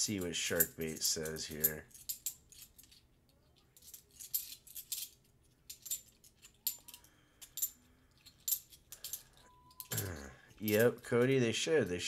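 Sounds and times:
coins clinking: 0:00.0 - 0:12.0.

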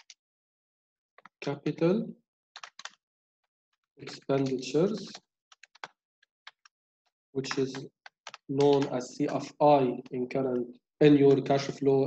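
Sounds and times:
keyboard typing: 0:02.6 - 0:03.0, 0:04.4 - 0:06.7, 0:07.5 - 0:09.0.

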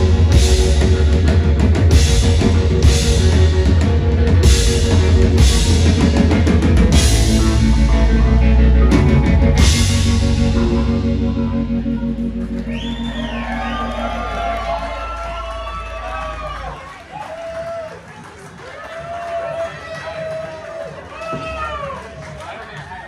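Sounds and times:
rock band chord ringing: 0:00.0 - 0:16.8
audience cheering and shouting: 0:00.0 - 0:23.0
low bass note: 0:06.8 - 0:16.4.

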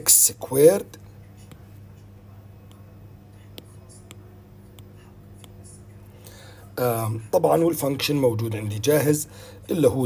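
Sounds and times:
steady low hum: 0:00.0 - 0:10.0
stylus tapping on glass screen: 0:03.5 - 0:05.6.

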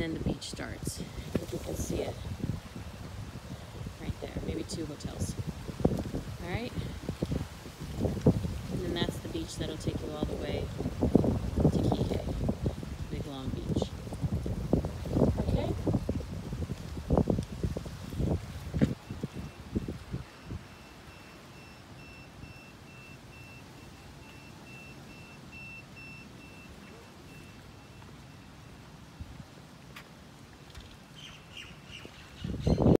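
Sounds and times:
wind buffeting microphone: 0:00.0 - 0:21.2, 0:30.3 - 0:33.0
birds chirping: 0:31.0 - 0:33.0.

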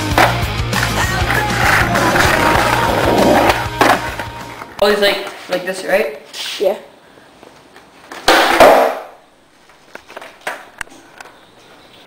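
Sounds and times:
skateboard scraping: 0:00.1 - 0:05.6
skateboard knocks on concrete: 0:08.2 - 0:09.1.

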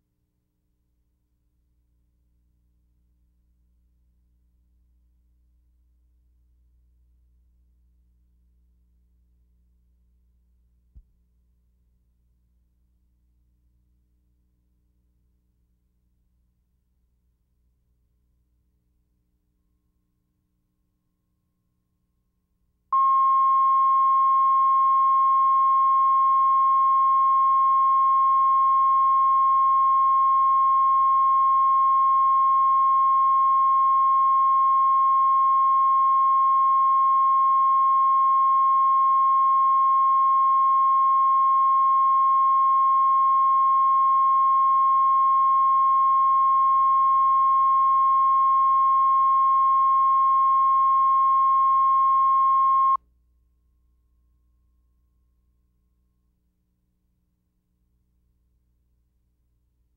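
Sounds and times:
faint low hum: 0:00.0 - 0:59.9.

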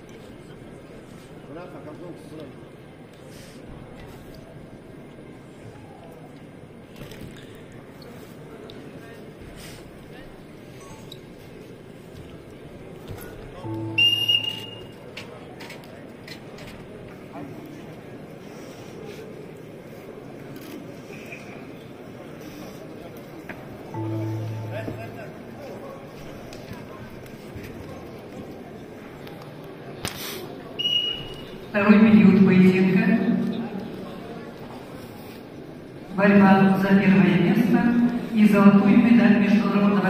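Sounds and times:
arena crowd hum: 0:00.0 - 0:40.0
high-pitched signal tone: 0:13.6 - 0:15.0, 0:24.0 - 0:25.3
referee's whistle: 0:14.0 - 0:14.9, 0:30.8 - 0:31.6.

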